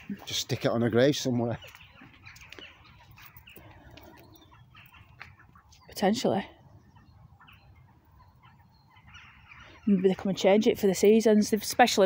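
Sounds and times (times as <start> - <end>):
faint birds chirping: 0.0 - 12.0.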